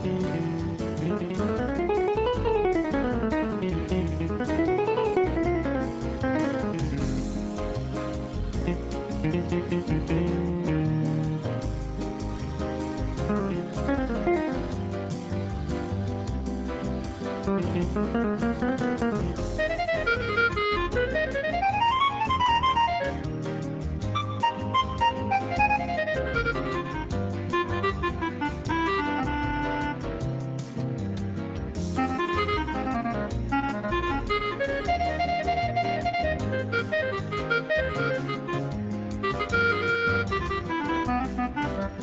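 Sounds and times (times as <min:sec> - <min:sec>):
clarinet jazz solo: 0:00.0 - 0:07.6, 0:08.6 - 0:11.4, 0:13.3 - 0:14.8, 0:17.6 - 0:30.4, 0:31.9 - 0:42.0
bossa nova backing music: 0:00.0 - 0:42.0
guitar and bass accompaniment: 0:00.0 - 0:42.0.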